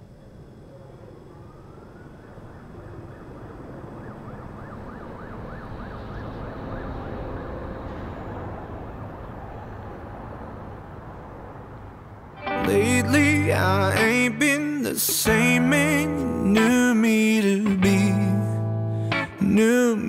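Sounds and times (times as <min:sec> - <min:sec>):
distant emergency vehicle siren: 0:00.0 - 0:14.6
low city traffic rumble: 0:00.0 - 0:15.0.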